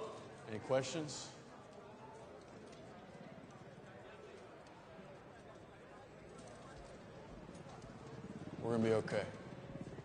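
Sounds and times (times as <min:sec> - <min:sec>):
low murmur of voices: 0:00.0 - 0:10.0
small scattered clicks: 0:01.6 - 0:10.0.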